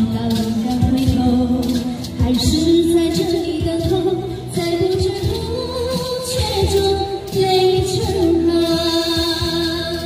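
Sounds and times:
backing track with a beat: 0.0 - 10.0
woman singing into microphone: 0.0 - 10.0.

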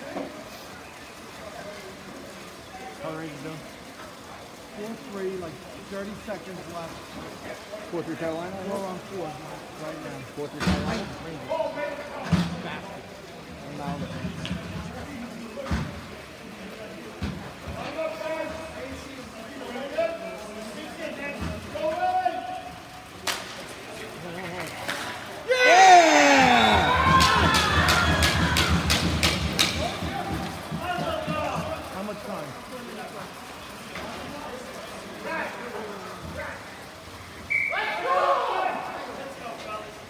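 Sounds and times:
people yelling and cheering: 25.4 - 32.0, 37.5 - 39.3
players shouting: 25.4 - 32.0, 37.5 - 39.2
sharp clacks: 27.2 - 30.6.

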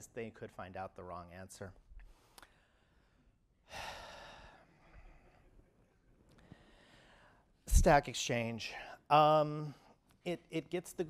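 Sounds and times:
man breathing into microphone: 6.4 - 7.5.

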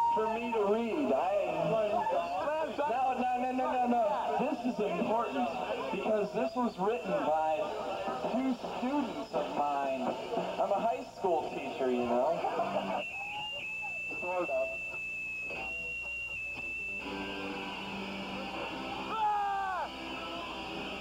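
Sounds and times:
people talking: 0.0 - 13.0, 14.1 - 14.8
high-pitched whine: 12.5 - 21.0
loud falling shout: 19.1 - 19.9.

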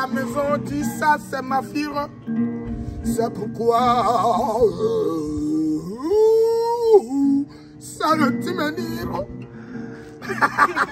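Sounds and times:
man singing: 0.0 - 2.2, 3.0 - 9.4.

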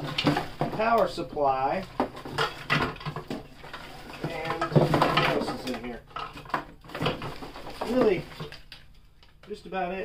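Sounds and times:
plastic electronics and cables rattling: 0.0 - 9.6.

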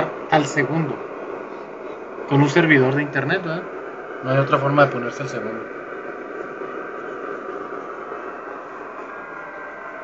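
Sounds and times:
faint steady radio tones: 0.0 - 10.0
radio static: 0.0 - 10.0.

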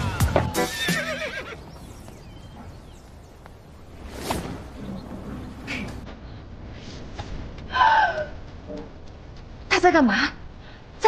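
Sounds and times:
background music: 0.0 - 1.7.

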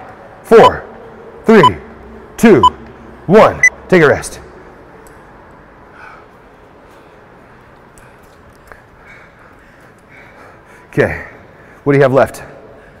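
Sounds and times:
man breathing hard: 5.9 - 7.4, 8.0 - 11.8.

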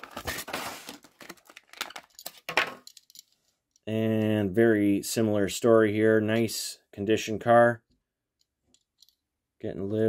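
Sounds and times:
plastic packaging rustle: 0.0 - 2.5
plastic packaging clicking and crinkling: 0.0 - 3.2.

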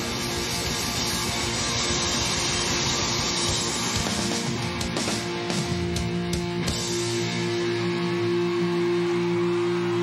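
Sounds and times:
distorted electric guitars: 0.0 - 10.0
drums: 0.0 - 10.0.

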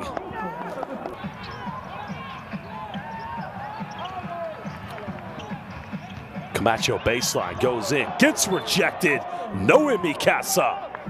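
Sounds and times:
sneakers squeaking on court: 0.0 - 6.6
arena crowd voices: 0.0 - 11.0
basketball dribbling: 1.0 - 6.6.

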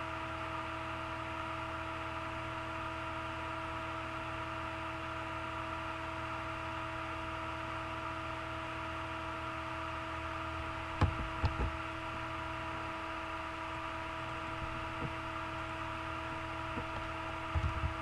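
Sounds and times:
electrical hum: 0.0 - 18.0.

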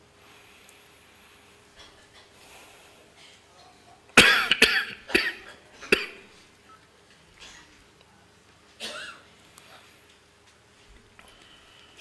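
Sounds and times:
man coughing: 4.2 - 6.2, 8.8 - 9.2.

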